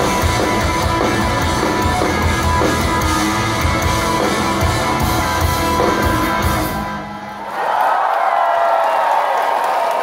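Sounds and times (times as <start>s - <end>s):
live rock band playing: 0.0s - 7.4s
concert crowd cheering: 0.0s - 10.0s.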